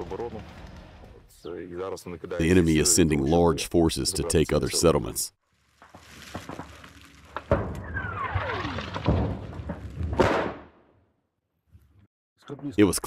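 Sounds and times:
explosions: 6.0 - 10.9
falling whistle: 7.8 - 8.8.

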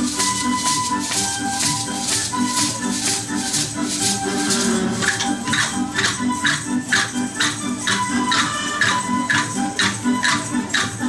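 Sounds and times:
maracas shaken in rhythm: 0.0 - 11.0
recorded backing music: 0.0 - 11.0.

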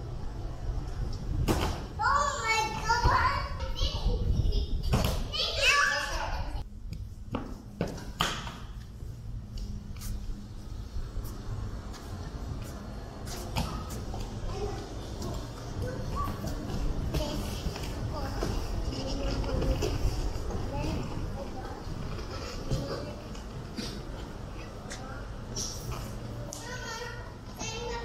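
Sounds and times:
steady low hum: 0.0 - 28.0.

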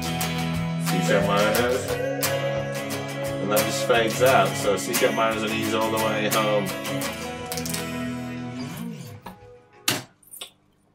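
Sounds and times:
electric guitar chord ringing: 0.0 - 9.5.

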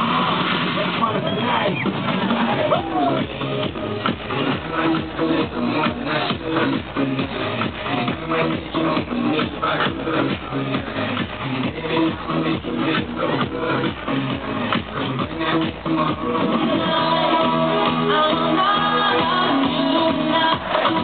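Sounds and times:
electronic dance music: 0.0 - 21.0.

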